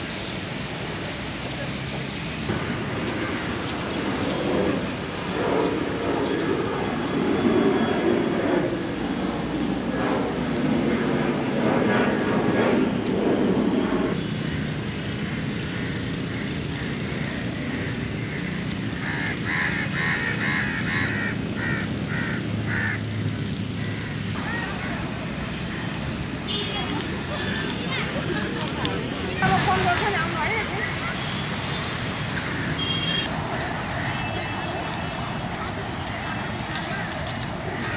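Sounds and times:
outdoor background noise: 0.0 - 37.9
voices: 24.3 - 31.9, 33.3 - 37.9.

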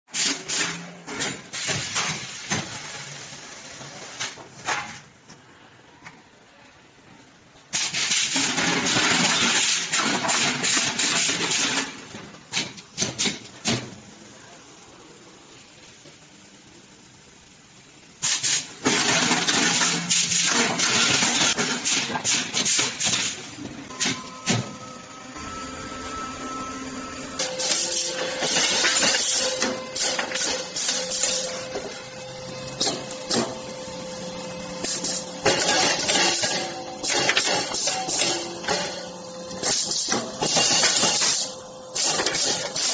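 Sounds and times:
machine hum: 18.8 - 42.9
steady tones: 23.8 - 35.6.

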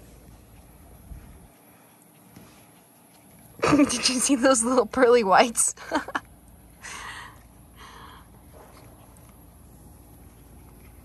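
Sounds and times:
breathy huffs of air: 6.8 - 8.5.

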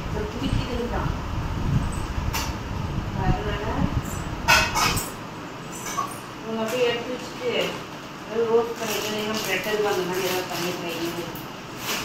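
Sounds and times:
steel vessels clinking: 4.1 - 6.3.

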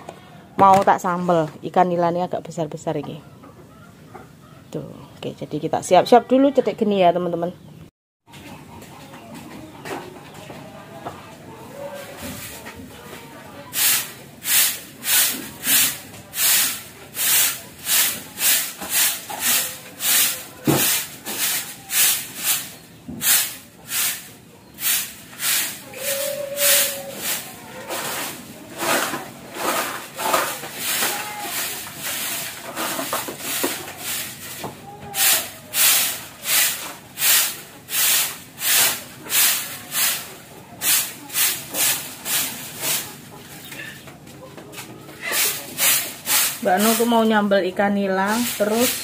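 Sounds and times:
broom sweeping dirt floor: 11.8 - 44.0, 44.6 - 47.6, 48.2 - 49.0.

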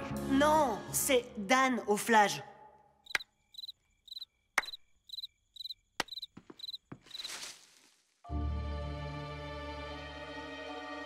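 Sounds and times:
cartoon cricket chirps: 3.0 - 7.4.

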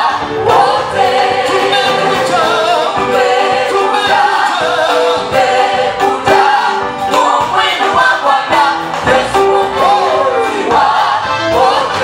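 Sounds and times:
drum kit beat: 0.0 - 12.0
keyboard: 0.0 - 12.0
women singing: 0.0 - 12.0.

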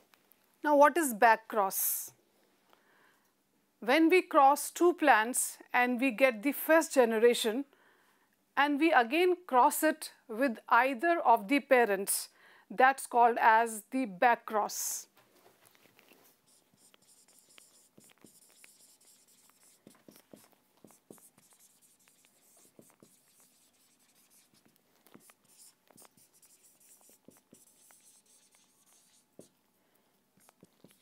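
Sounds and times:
marker pen writing on whiteboard: 16.3 - 29.7, 30.4 - 31.0.

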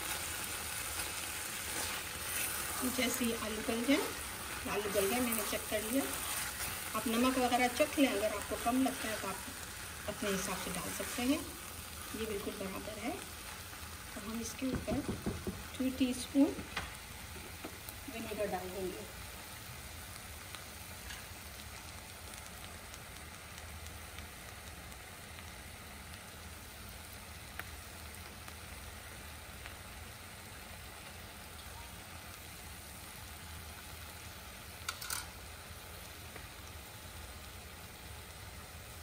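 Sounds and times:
curry sizzling in a pot: 0.0 - 39.0.

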